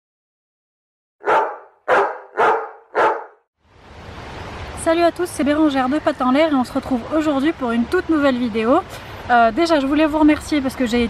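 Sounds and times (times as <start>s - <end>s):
dog barking: 1.2s - 3.4s.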